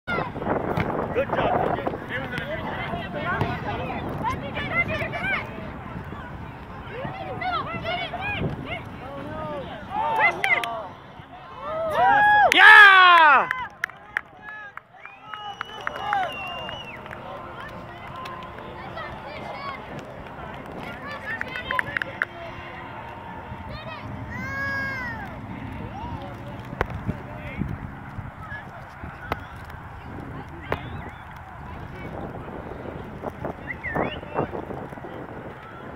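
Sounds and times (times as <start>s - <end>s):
wind noise on microphone: 0.1s - 10.2s, 23.2s - 35.9s
distant voices: 0.1s - 12.5s, 13.1s - 35.9s.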